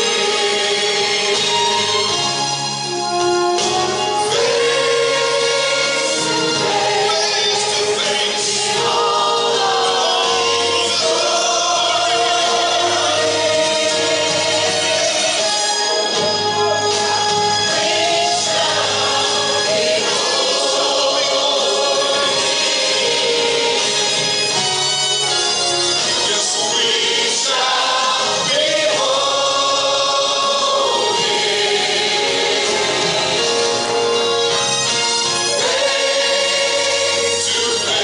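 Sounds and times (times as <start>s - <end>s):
group singing a hymn: 0.0s - 2.4s, 3.1s - 24.9s, 25.7s - 38.0s.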